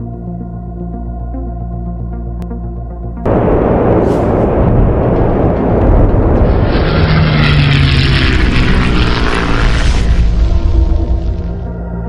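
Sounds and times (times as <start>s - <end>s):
propeller airplane engine drone: 4.9s - 11.8s.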